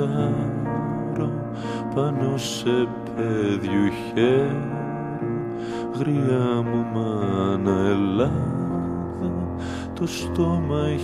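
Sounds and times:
instrumental backing: 0.0 - 11.0
person singing long vowel: 0.0 - 11.0.

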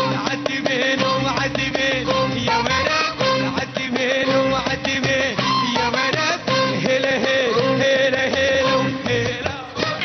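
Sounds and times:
live band with trumpet and violins: 0.0 - 10.0.

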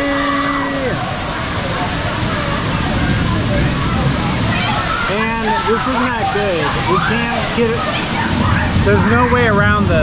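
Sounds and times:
faint voices: 0.0 - 10.0
waterfall rushing and splashing: 0.0 - 10.0.

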